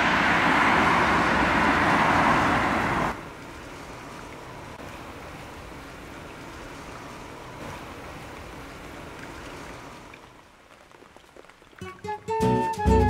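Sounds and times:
steady rain falling: 0.0 - 13.0.

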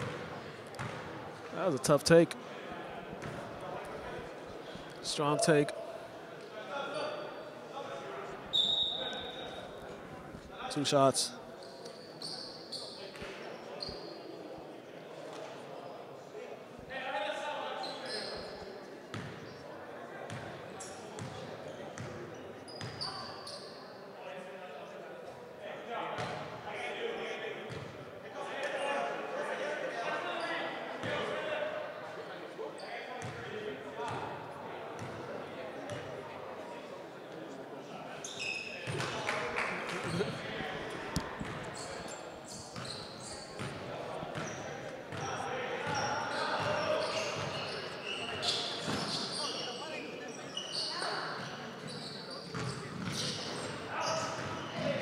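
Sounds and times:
voices in gym: 0.0 - 55.0.

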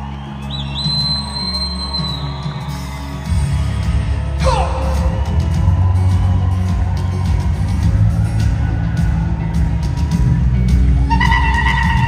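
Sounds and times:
low synth and bass chords: 2.5 - 12.0.

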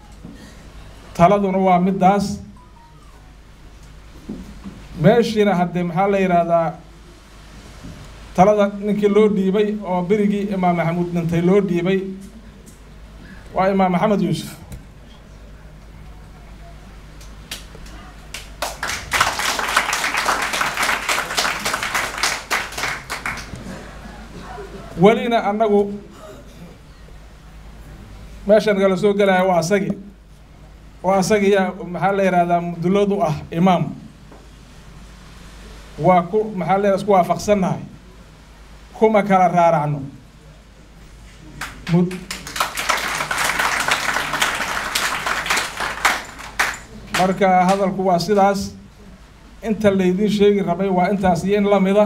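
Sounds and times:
audience applause: 18.3 - 24.8, 41.6 - 47.8.

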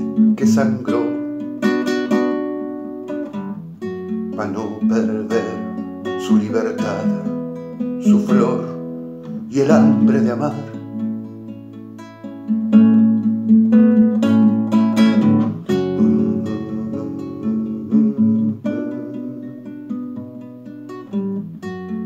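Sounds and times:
classical guitar chords: 0.0 - 22.0.

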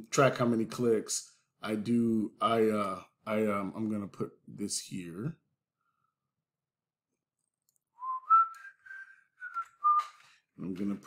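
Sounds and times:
person whistling a tune: 8.0 - 10.2.

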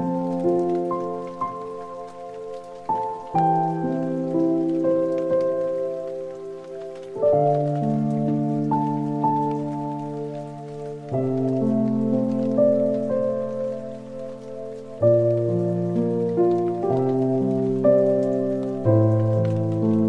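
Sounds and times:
rain: 0.0 - 20.0
slow keyboard chords: 0.0 - 20.0.

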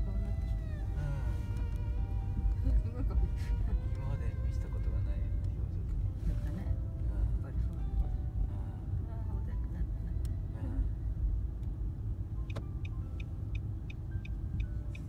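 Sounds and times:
car cabin road rumble: 0.0 - 15.0
regular ticking: 12.4 - 15.0.

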